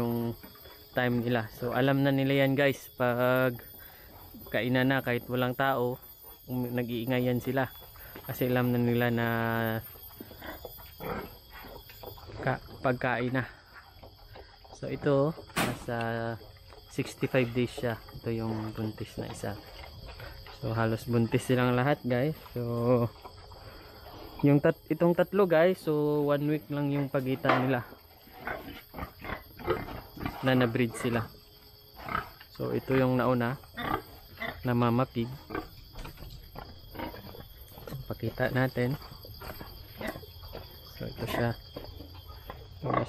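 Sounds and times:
pigs grunting: 3.5 - 24.7, 25.6 - 31.4, 32.0 - 43.0.

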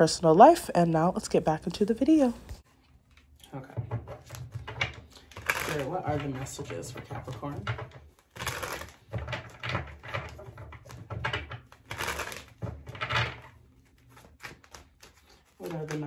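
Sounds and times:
cards shuffling: 4.1 - 16.0.

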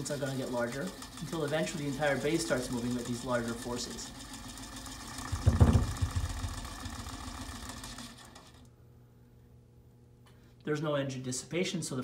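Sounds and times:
small electric motor running: 0.0 - 8.7
frame rattling: 5.3 - 6.4.

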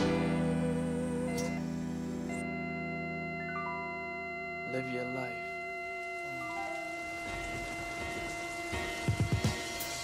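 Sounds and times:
held synthesizer tones: 2.3 - 9.8
crackling hiss: 6.2 - 10.0.

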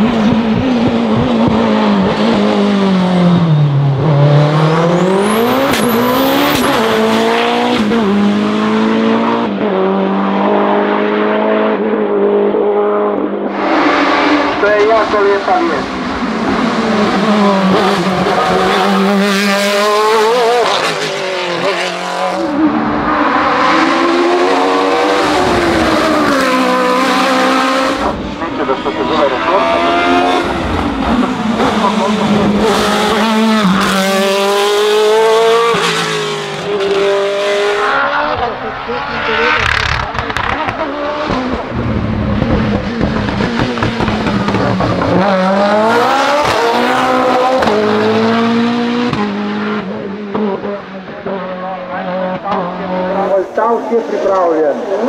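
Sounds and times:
race car engine at full throttle: 0.0 - 55.0
rally car engine accelerating: 0.0 - 55.0.

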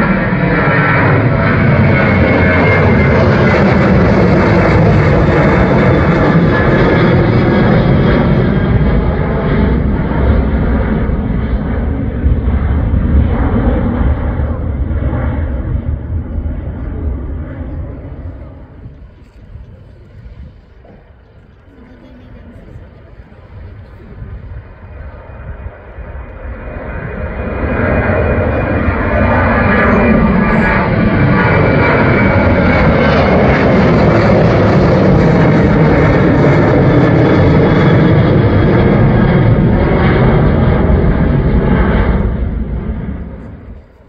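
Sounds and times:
departing jet aircraft: 0.0 - 44.0
jet airliner taking off: 0.0 - 44.0.

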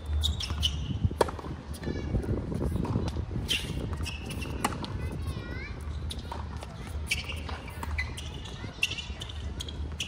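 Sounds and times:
tennis ball impacts: 1.2 - 1.5, 2.8 - 5.0.

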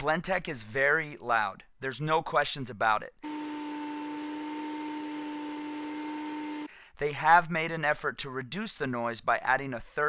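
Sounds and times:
blender motor whine: 3.2 - 6.7.

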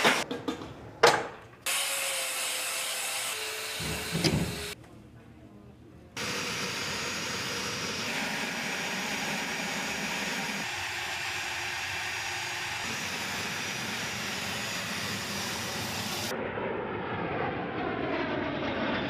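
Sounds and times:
jet engines whining: 6.2 - 19.0
jet aircraft passing: 13.0 - 19.0.

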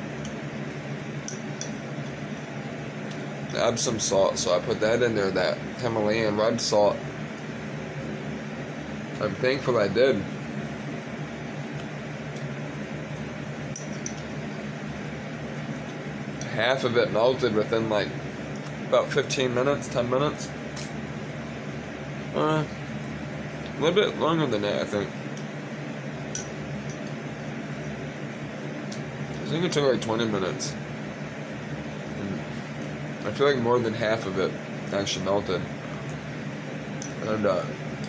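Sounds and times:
fan appliance humming: 0.0 - 38.0.

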